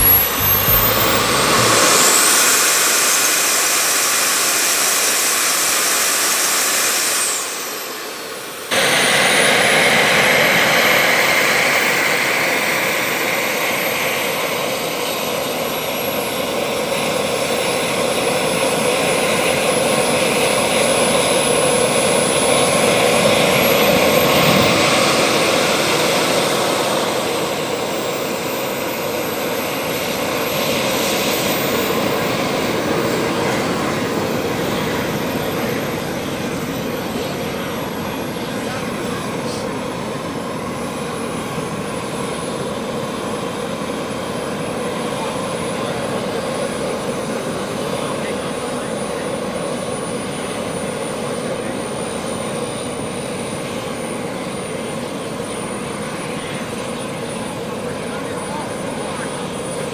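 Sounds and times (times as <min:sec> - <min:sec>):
jet turbine engine whine: 0:00.0 - 0:59.9.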